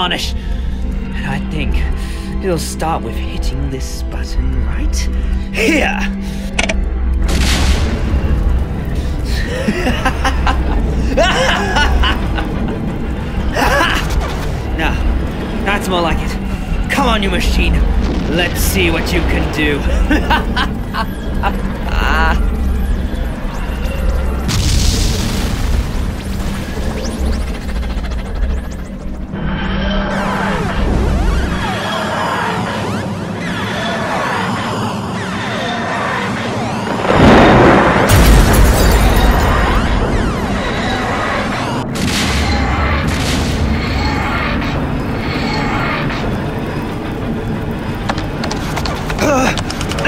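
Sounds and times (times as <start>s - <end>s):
music: 0.0s - 50.0s
deep booming explosion rumble: 17.6s - 21.0s, 24.4s - 27.4s, 36.9s - 41.0s
deep rumbling boom: 36.9s - 40.6s.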